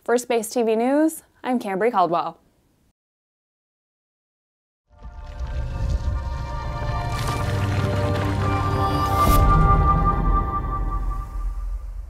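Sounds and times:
deep low swell: 0:05.0 - 0:12.0.

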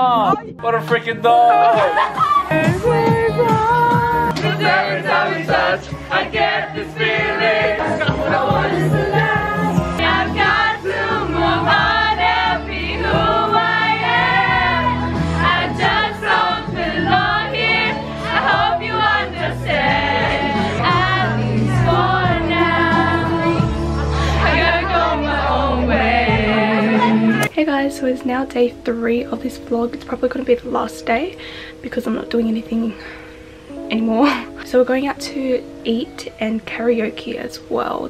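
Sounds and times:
song with bass notes: 0:00.0 - 0:27.5
music: 0:00.0 - 0:38.0
group singing loudly: 0:01.5 - 0:27.5.

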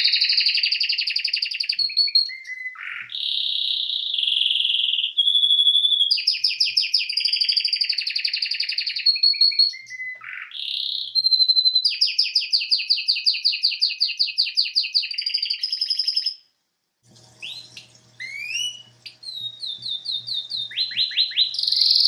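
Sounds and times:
canary singing trills: 0:00.0 - 0:16.4, 0:17.2 - 0:22.0.

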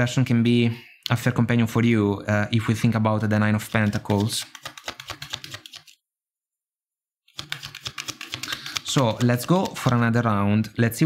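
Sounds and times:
cards being shuffled: 0:03.5 - 0:06.0, 0:07.3 - 0:10.2.

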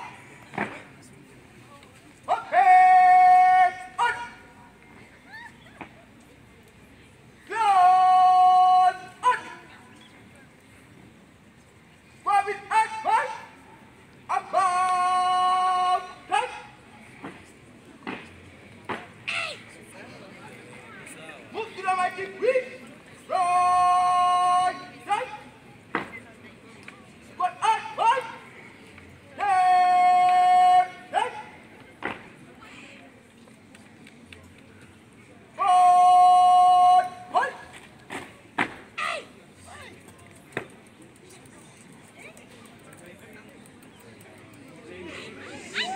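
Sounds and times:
person shouting command: 0:02.3 - 0:04.5, 0:07.5 - 0:09.7, 0:12.2 - 0:13.6, 0:14.3 - 0:16.8, 0:21.7 - 0:25.5, 0:27.4 - 0:28.4, 0:29.4 - 0:31.6, 0:35.6 - 0:37.6.

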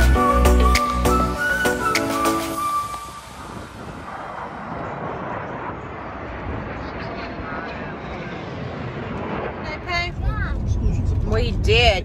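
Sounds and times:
jet engines rushing: 0:00.0 - 0:12.0.

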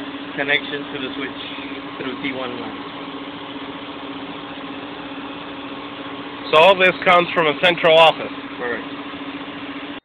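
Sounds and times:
machine hum and cooling units: 0:00.0 - 0:10.0.

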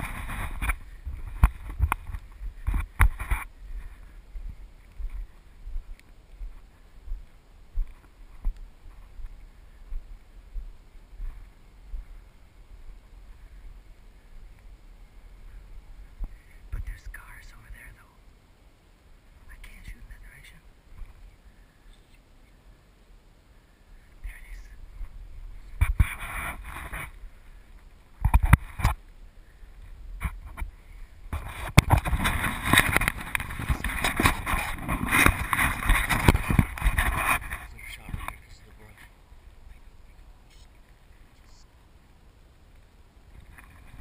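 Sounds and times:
clothing rubbing on camera: 0:00.0 - 0:04.2, 0:24.3 - 0:27.2, 0:31.3 - 0:38.3
footsteps on dry brush: 0:00.0 - 0:13.0, 0:24.9 - 0:29.0, 0:29.8 - 0:38.3
hushed whispering: 0:15.5 - 0:18.2, 0:19.4 - 0:20.7, 0:24.0 - 0:24.9, 0:39.7 - 0:41.7.

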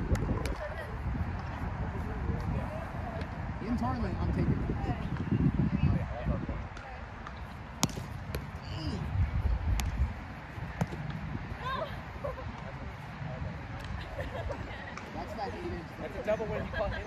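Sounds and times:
ball slapped by hand: 0:06.8 - 0:08.4.

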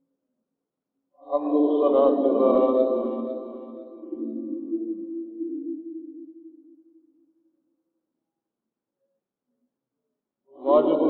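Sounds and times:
man chanting a long note: 0:01.3 - 0:04.8, 0:10.6 - 0:11.0.

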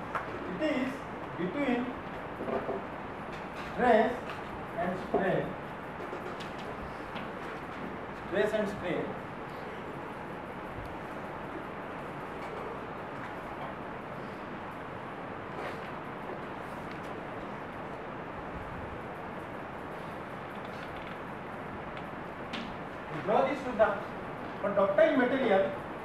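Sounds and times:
room noise hiss: 0:00.0 - 0:26.0.

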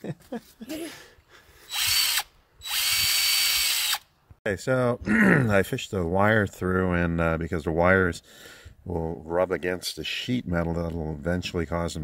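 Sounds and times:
cordless drill whine: 0:01.7 - 0:04.0.

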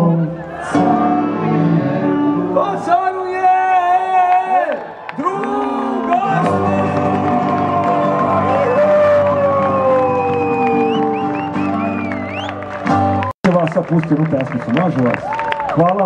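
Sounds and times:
live band with singing: 0:00.0 - 0:03.2, 0:05.4 - 0:13.3.

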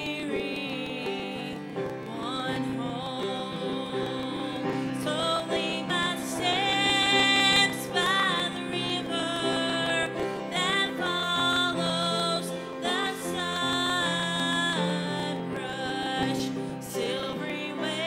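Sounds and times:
grand piano chords: 0:00.0 - 0:18.0
woman singing: 0:00.0 - 0:18.0.

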